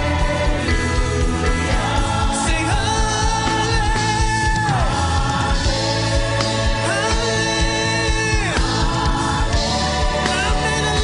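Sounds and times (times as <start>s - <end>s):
band playing: 0.0s - 11.0s
gospel choir singing: 0.0s - 11.0s
steady drum beat: 0.0s - 11.0s.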